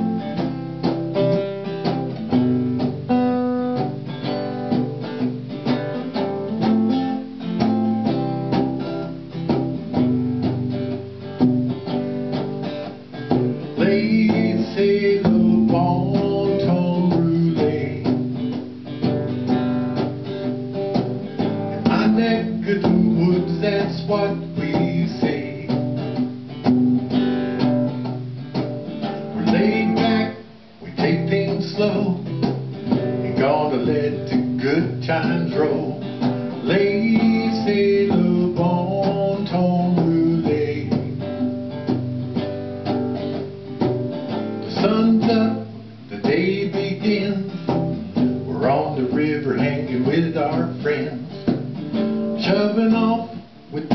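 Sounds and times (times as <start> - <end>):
acoustic guitar strumming: 0.0 - 53.9.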